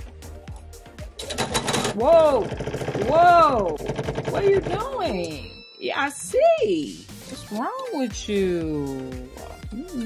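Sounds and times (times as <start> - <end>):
soft background music: 0.0 - 10.0
electric sewing machine running: 1.2 - 5.2.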